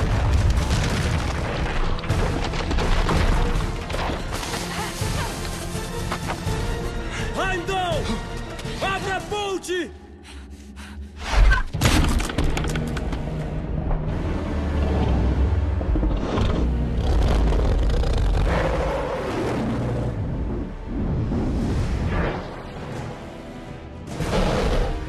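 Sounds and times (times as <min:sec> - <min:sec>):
heavy booms and rumbling: 0:00.0 - 0:03.8
dramatic music score: 0:00.0 - 0:25.0.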